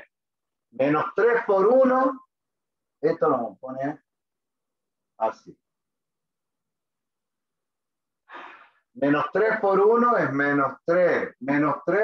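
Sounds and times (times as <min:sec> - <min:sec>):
man's short breath: 0:08.3 - 0:08.9.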